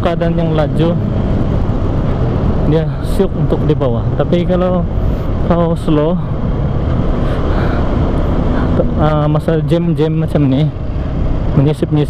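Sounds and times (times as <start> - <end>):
wind buffeting microphone: 0.0 - 11.6
motorcycle engine cruising: 0.0 - 12.0.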